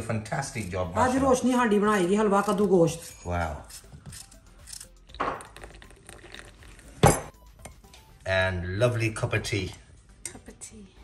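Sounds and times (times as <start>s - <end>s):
crockery and teaspoon clinking: 2.5s - 7.9s.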